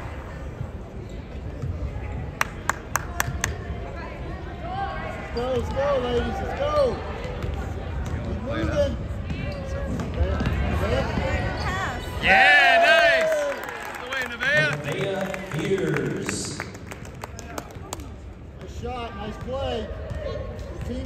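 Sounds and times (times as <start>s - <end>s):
gym crowd noise: 0.0s - 21.0s.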